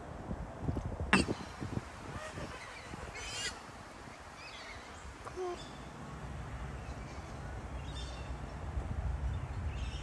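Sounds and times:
ducks quacking: 0:02.0 - 0:03.6.

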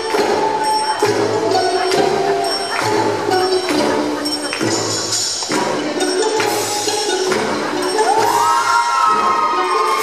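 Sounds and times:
spectators cheering: 0:08.0 - 0:10.0.

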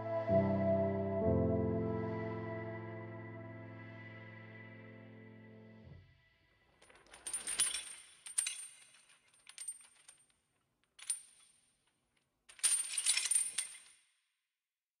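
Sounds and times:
small metal pieces clinking: 0:06.8 - 0:14.1.

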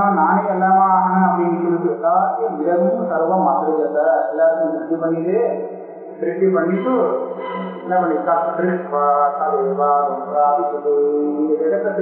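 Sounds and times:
man chanting verse: 0:00.0 - 0:05.6, 0:06.2 - 0:12.0.

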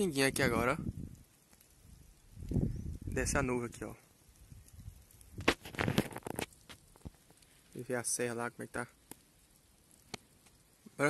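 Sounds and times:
raindrops ticking: 0:00.0 - 0:11.0.

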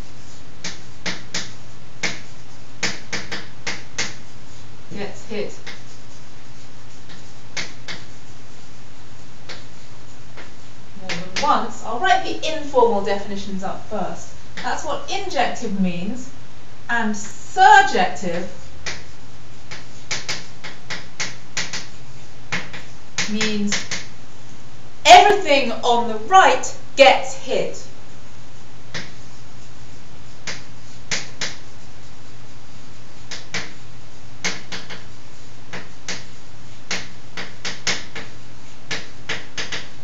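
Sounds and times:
chalk tapping and scratching: 0:00.0 - 0:15.4, 0:17.0 - 0:26.8, 0:28.0 - 0:40.0
steady hiss: 0:00.0 - 0:40.0.

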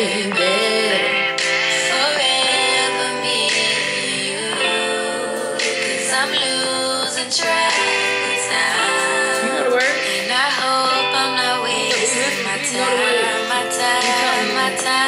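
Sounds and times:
song with sung vocals: 0:00.0 - 0:15.0.

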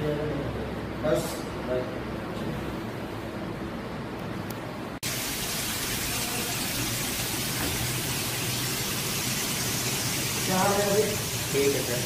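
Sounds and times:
steady hiss: 0:05.0 - 0:12.0.

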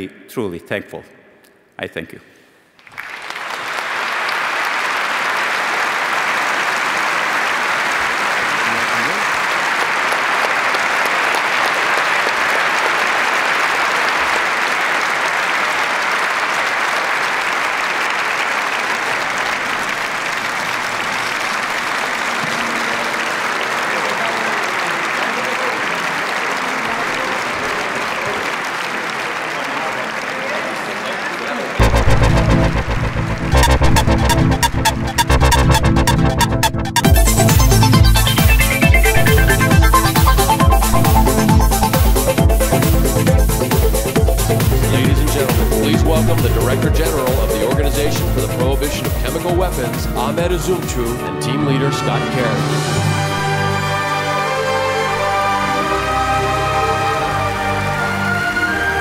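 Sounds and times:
audience applauding: 0:02.8 - 0:59.0.

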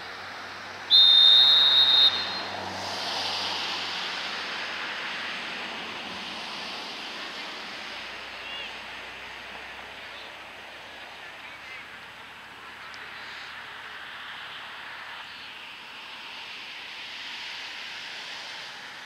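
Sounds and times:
wash of noise: 0:00.0 - 0:19.0
referee's whistle blast: 0:00.9 - 0:02.5.

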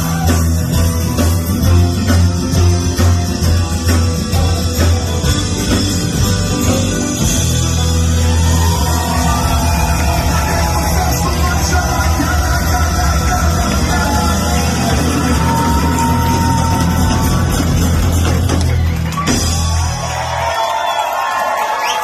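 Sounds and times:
heavy bass line: 0:00.0 - 0:20.0
live rock band playing: 0:00.0 - 0:20.6.

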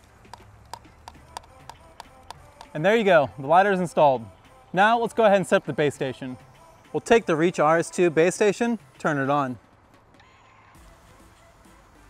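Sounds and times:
cable connector clicks and taps: 0:00.3 - 0:02.8.

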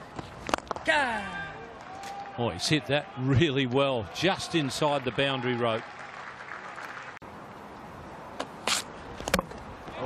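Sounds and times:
cricket crowd noise: 0:01.4 - 0:07.2.

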